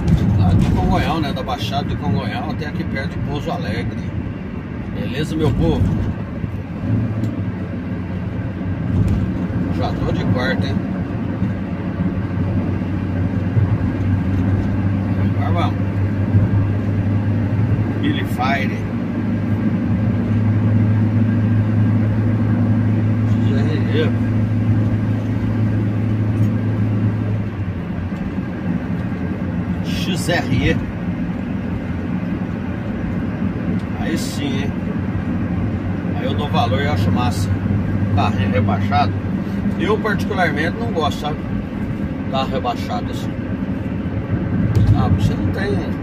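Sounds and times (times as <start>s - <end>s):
engine and road noise in cab: 0.0s - 46.0s.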